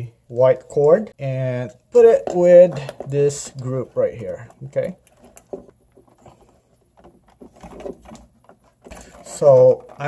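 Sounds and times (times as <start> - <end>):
insulated wires rustling and clicking: 0.0 - 10.0.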